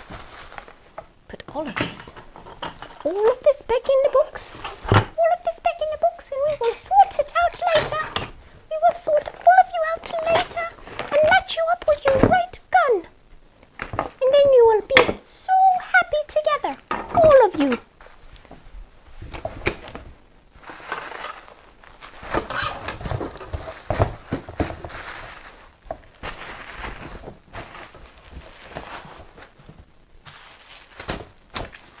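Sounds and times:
bubble wrap crinkling: 0.0s - 1.4s, 2.2s - 12.6s, 17.4s - 32.0s.

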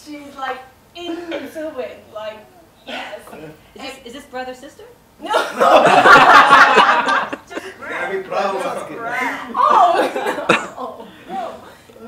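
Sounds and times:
people talking and laughing: 5.2s - 12.0s.

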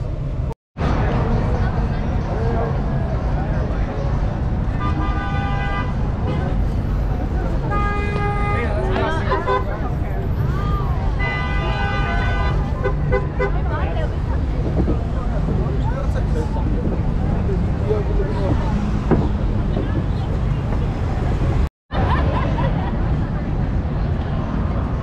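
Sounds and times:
street traffic rumble: 0.0s - 25.0s
crowd voices: 0.8s - 25.0s
vehicle horn honking: 4.8s - 6.6s, 7.7s - 9.8s, 11.2s - 13.6s.

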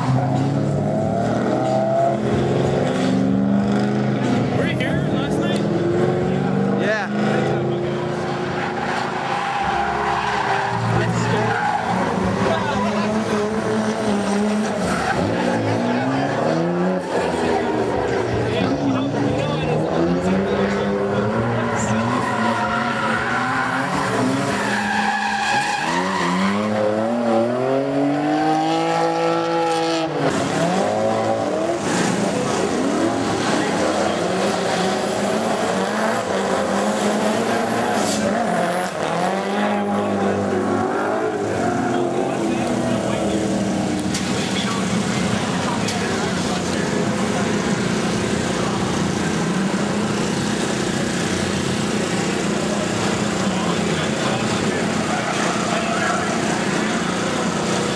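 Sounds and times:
tyres squealing and skidding: 0.0s - 4.6s, 5.2s - 57.9s
car engines revving hard: 0.0s - 57.9s.

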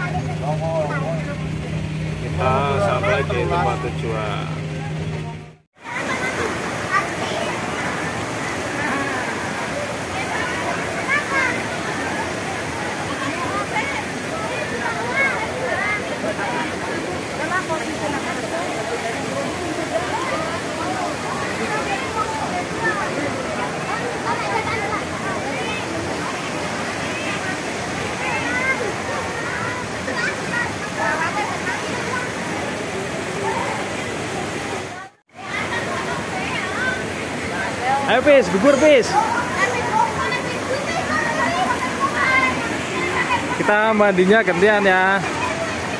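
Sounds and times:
crowd talking and calling out: 0.0s - 45.9s
rush of falling water: 0.0s - 45.9s.

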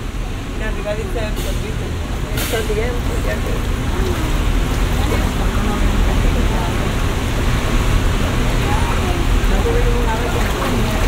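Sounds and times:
ride boat rumbling: 0.0s - 11.0s
quiet indistinct conversation: 0.3s - 11.0s.

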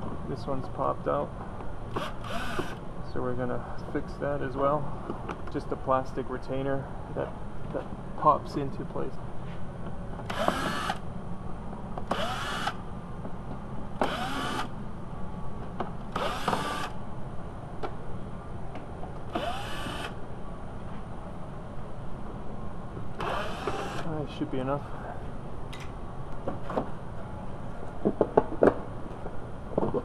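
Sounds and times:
cordless drill whining: 1.9s - 2.8s, 10.3s - 11.0s, 12.1s - 12.8s, 14.0s - 14.7s, 16.2s - 16.9s, 19.3s - 20.1s, 23.2s - 24.0s.

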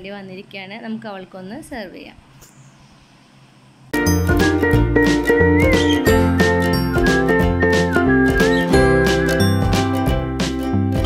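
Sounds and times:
whistled melody: 4.0s - 10.1s
steady beat: 4.0s - 11.0s
chiming bells: 8.7s - 9.9s.

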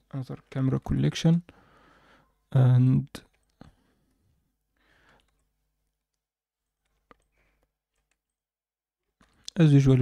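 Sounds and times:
faint breath: 1.5s - 2.4s, 4.8s - 5.4s.

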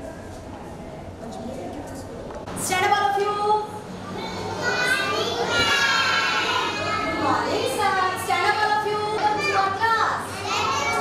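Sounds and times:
young children's voices: 4.0s - 8.2s, 9.1s - 11.0s.

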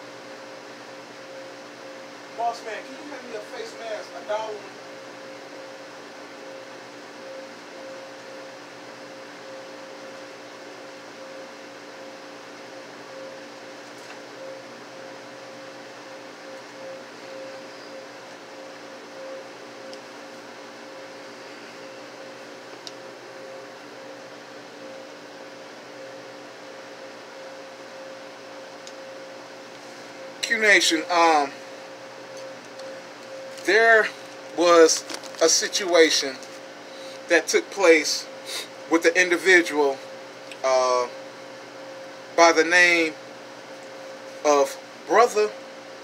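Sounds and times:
drink cooler hum: 0.0s - 46.0s.

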